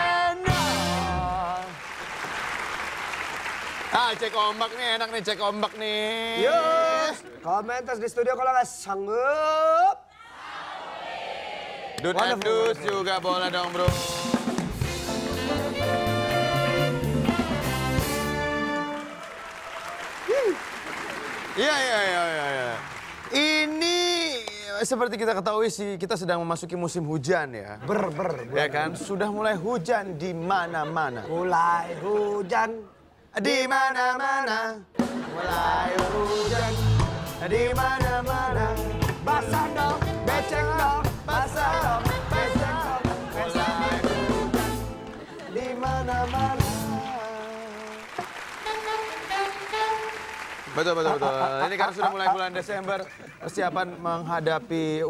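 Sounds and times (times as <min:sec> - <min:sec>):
audience applauding: 0:01.4 - 0:07.8, 0:11.9 - 0:16.7, 0:18.2 - 0:24.7, 0:43.0 - 0:53.3
band chord: 0:13.9 - 0:19.0, 0:35.9 - 0:45.1
person singing: 0:35.2 - 0:49.9.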